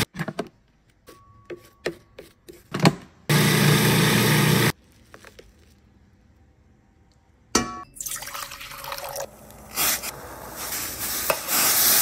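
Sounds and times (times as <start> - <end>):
food processor motor chopping: 3.3 - 4.7.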